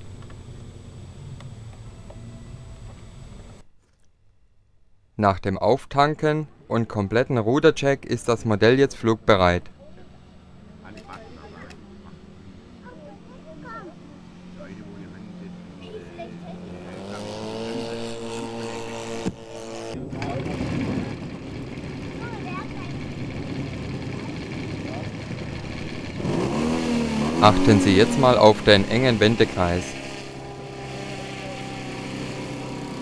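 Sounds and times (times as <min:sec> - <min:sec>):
model aircraft engine running: 0:00.0 - 0:03.6, 0:10.0 - 0:33.0.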